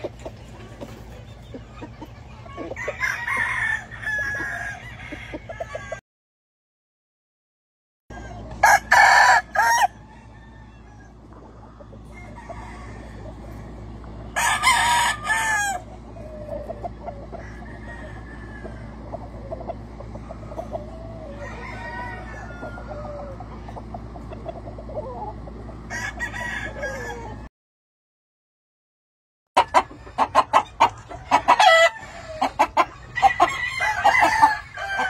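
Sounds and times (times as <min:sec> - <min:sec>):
chickens clucking and calling: 0:00.0 - 0:06.0, 0:08.1 - 0:27.5, 0:29.6 - 0:35.0
roosters crowing: 0:02.5 - 0:06.0, 0:08.1 - 0:27.5, 0:29.6 - 0:35.0.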